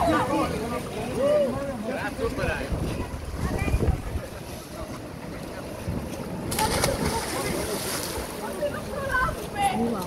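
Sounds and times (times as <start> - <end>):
water splashing: 0.0 - 10.0
wind buffeting microphone: 2.4 - 4.4
waves breaking against rocks: 2.7 - 10.0.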